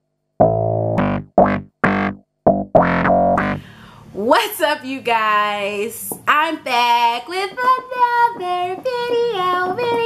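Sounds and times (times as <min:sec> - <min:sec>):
woman singing playful tune: 0:04.2 - 0:10.0.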